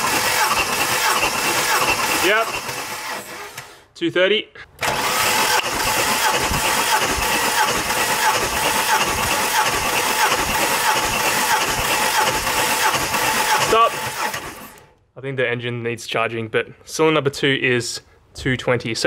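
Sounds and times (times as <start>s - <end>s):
engine cranking whirr: 0.0s - 3.8s, 4.8s - 15.0s.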